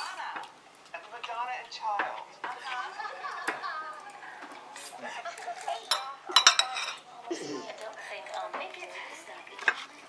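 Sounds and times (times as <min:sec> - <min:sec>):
cutlery clinking on plates: 0:04.4 - 0:07.1, 0:09.6 - 0:09.9.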